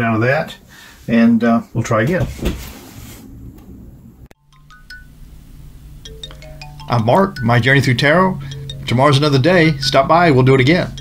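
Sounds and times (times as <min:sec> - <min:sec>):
low steady hum: 0:03.2 - 0:11.0
bright chime notes: 0:04.4 - 0:11.0.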